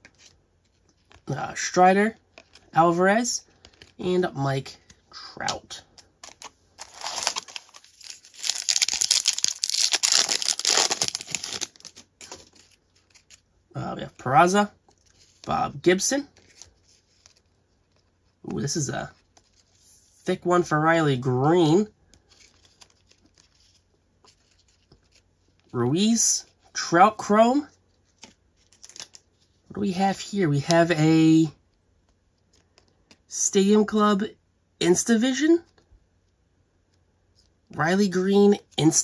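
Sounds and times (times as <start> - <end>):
trading cards rustling: 0.0 - 19.8, 22.1 - 25.7, 27.9 - 29.5
wrapper rustling: 6.0 - 13.5, 28.0 - 29.5
wrapper tearing and crumpling: 6.3 - 13.4, 28.6 - 29.2.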